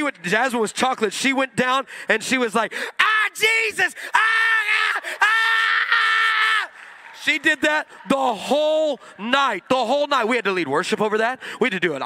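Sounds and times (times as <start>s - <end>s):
man screaming into a microphone: 2.8s - 6.8s.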